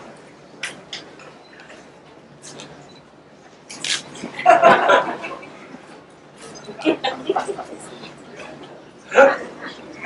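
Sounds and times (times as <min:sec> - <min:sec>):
faint murmuring: 0:05.4 - 0:10.0.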